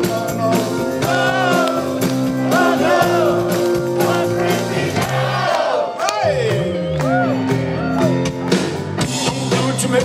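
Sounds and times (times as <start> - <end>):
live rock band playing: 0.0 - 10.0
crowd shouting: 1.0 - 6.4.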